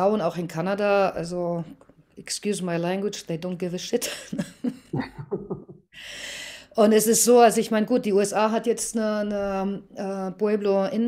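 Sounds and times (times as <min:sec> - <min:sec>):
woman laughing: 0:04.0 - 0:05.9.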